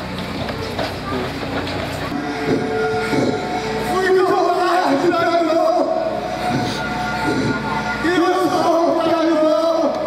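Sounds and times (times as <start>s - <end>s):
held chord of background music: 2.1s - 10.0s.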